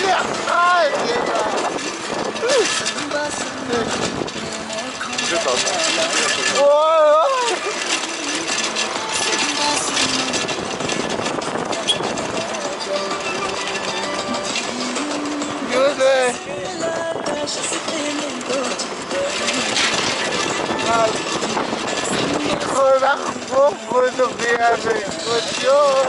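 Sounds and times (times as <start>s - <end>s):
scooter engine running: 0.0s - 26.0s
wind noise on microphone: 0.0s - 26.0s.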